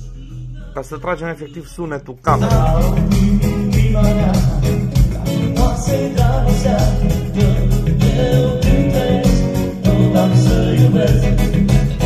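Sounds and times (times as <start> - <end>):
bass: 0.0 - 12.0
keyboard: 0.0 - 12.0
person singing: 0.0 - 12.0
steady beat: 2.3 - 12.0.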